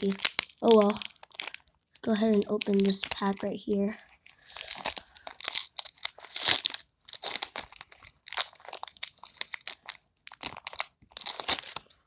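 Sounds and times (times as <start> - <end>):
wrapper being torn open: 0.0 - 3.4, 4.1 - 12.0
foil wrapper crinkling: 0.0 - 12.0.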